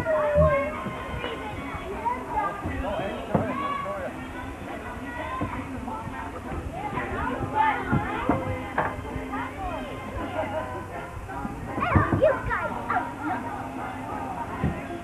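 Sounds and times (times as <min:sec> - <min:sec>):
background music: 0:00.0 - 0:15.0
children calling and chattering: 0:00.0 - 0:15.0.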